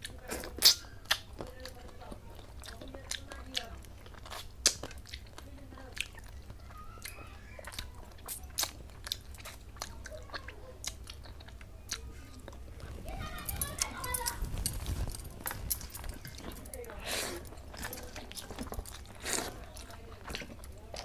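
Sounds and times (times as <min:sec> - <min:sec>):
chewing with wet mouth clicks: 0:00.0 - 0:21.0.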